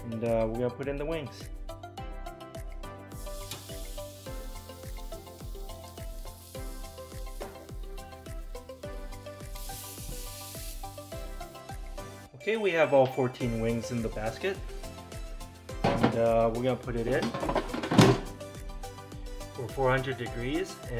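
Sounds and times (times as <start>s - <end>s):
background music with beat: 0.0s - 20.9s
bright hissing layer: 3.1s - 12.3s.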